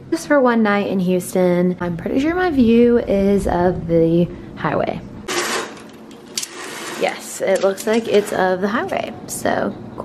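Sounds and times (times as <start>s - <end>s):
fabric window shade rustling: 5.3s - 8.5s
window shade rattling clicks: 5.3s - 8.5s.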